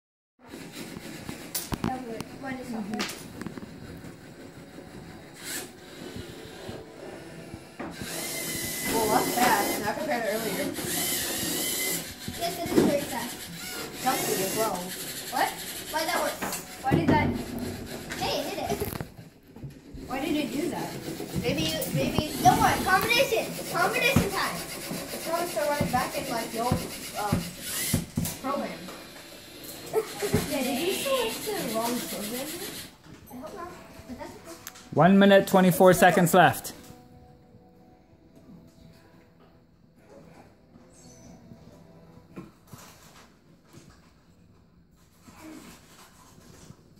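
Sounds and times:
children talking indistinctly: 0.4 - 36.8
robot motors whirring: 4.6 - 6.9, 7.9 - 16.7, 21.1 - 32.9.

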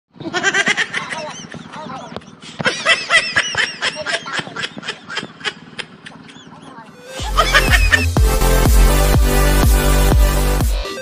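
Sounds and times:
men laughing and shouting: 0.3 - 8.2.

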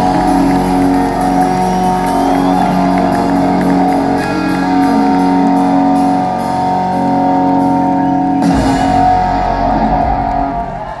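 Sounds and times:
sustained electric guitar notes: 0.0 - 10.9
live rock band: 0.0 - 11.0.

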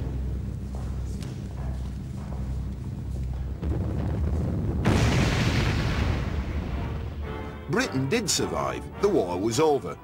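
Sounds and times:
low steady rumble: 0.0 - 7.3
loud bomb blast: 3.6 - 7.3.

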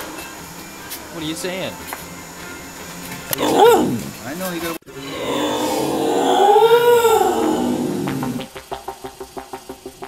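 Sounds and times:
dog howl-like whine: 3.4 - 4.2, 5.0 - 8.4.

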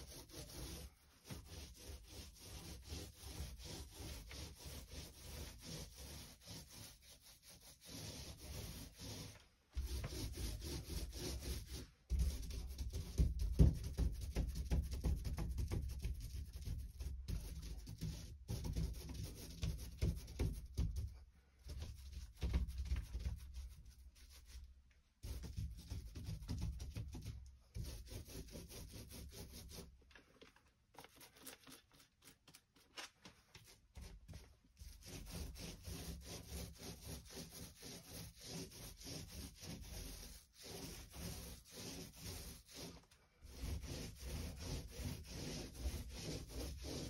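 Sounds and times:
paint roller rubbing on door: 0.0 - 24.6, 25.2 - 29.9, 33.6 - 47.0.

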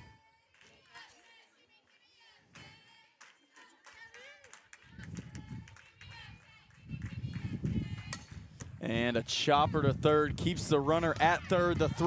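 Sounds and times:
wind rumbling on microphone: 4.8 - 12.0.

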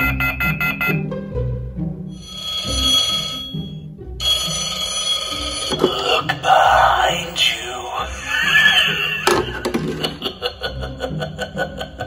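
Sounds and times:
telephone ringing electronically: 0.0 - 1.0, 2.2 - 5.8
background music: 0.0 - 12.0.

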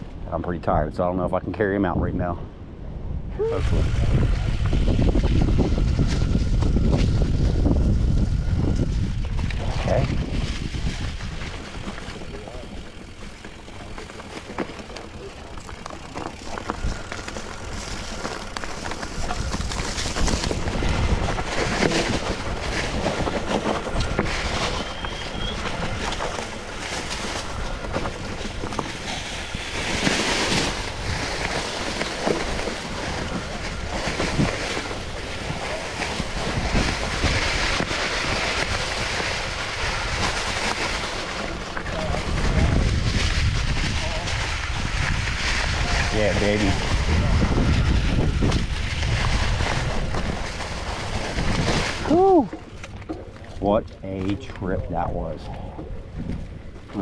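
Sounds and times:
wind on microphone: 0.0 - 15.3, 16.0 - 57.0
tyres rolling over leaves and rocks: 4.0 - 54.6
bike rattling and clicking: 4.1 - 54.6.

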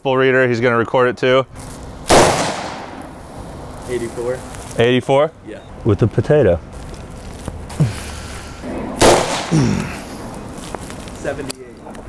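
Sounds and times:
rifle shot: 2.1 - 3.2, 9.0 - 9.6.

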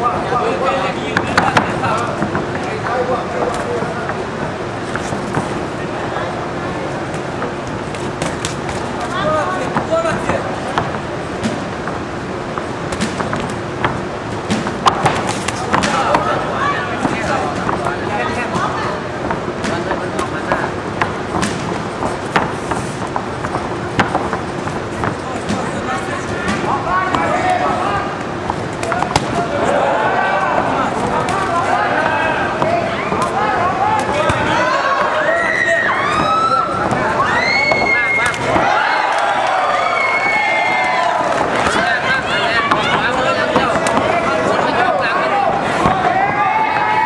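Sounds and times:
crowd shouting: 14.9 - 19.1, 25.4 - 47.0.

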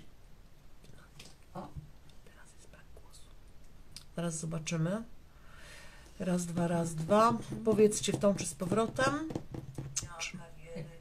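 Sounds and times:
woman whispering: 0.8 - 3.4.

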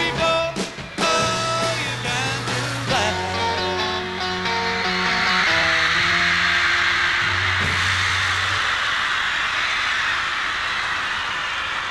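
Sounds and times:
rock band guitar and bass: 0.0 - 8.9
crowd screaming: 0.1 - 11.9.

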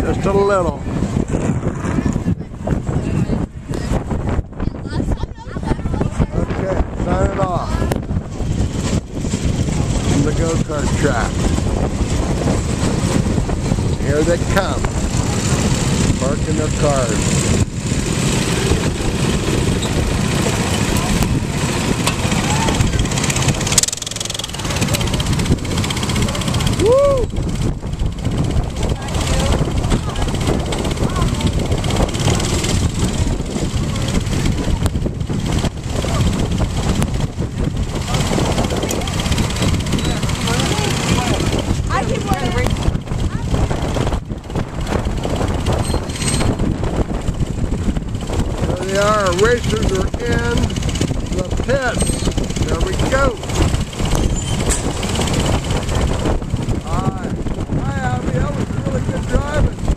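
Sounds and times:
people's voices: 0.0 - 9.0, 9.7 - 12.3, 18.6 - 44.1, 48.6 - 56.0, 56.6 - 59.9
go-kart engines running: 0.0 - 59.9.

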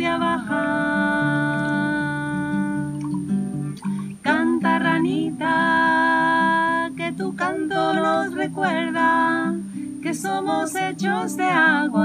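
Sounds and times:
strummed acoustic guitar: 0.0 - 12.0.

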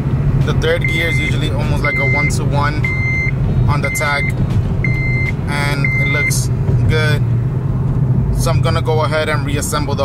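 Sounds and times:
car engine drone: 0.0 - 10.0.

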